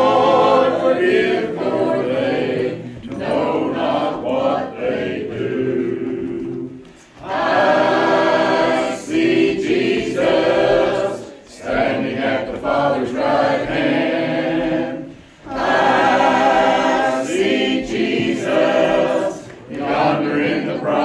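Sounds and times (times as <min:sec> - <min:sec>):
congregation singing a hymn: 0:00.0 - 0:21.0.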